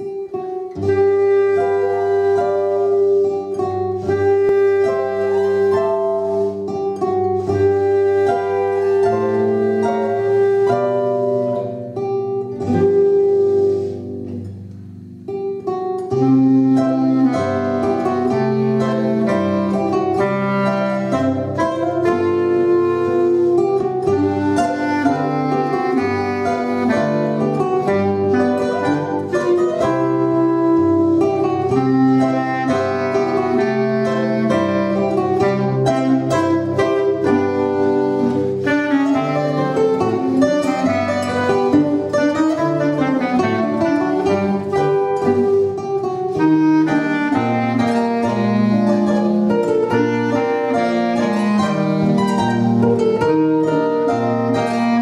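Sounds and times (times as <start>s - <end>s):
clarinet melody: 0.0s - 55.0s
zither plucked melody and chords: 0.0s - 55.0s.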